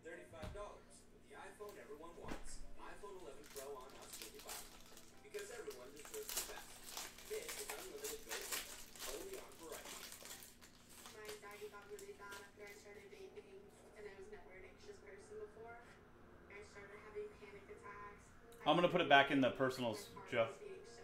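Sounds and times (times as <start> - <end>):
foil wrapper crinkling and tearing: 2.9 - 12.8.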